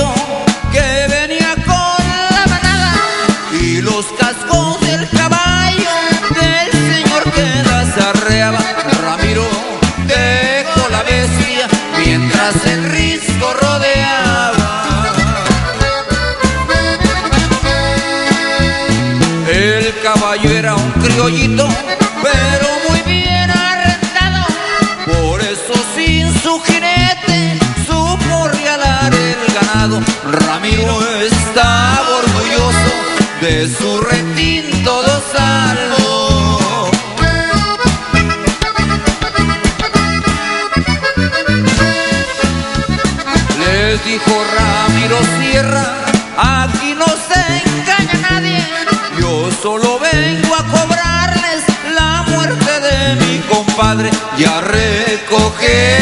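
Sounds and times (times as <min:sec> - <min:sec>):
accordion band with bass and drums: 0:00.0 - 0:56.0.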